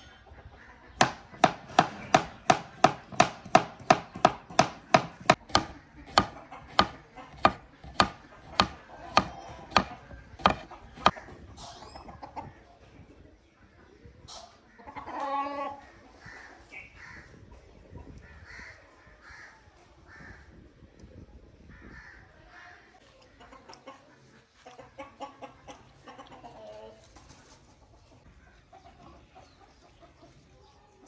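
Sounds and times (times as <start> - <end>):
chickens clucking: 0.0 - 20.3, 22.9 - 31.0.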